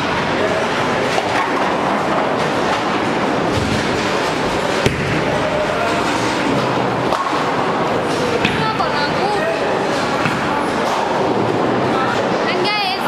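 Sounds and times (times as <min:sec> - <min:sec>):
bowling balls rumbling on lanes: 0:00.0 - 0:12.3.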